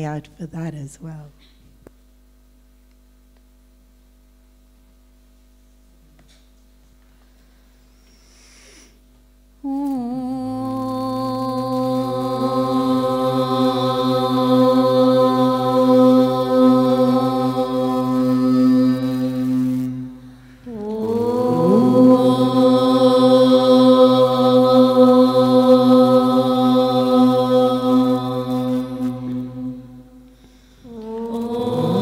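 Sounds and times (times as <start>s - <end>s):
group chanting in unison: 10.4s - 32.0s.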